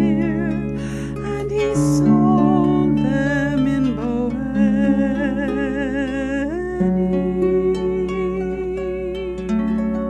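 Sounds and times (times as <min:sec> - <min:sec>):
woman singing wordless notes: 0:00.0 - 0:09.6
harp notes: 0:00.0 - 0:10.0.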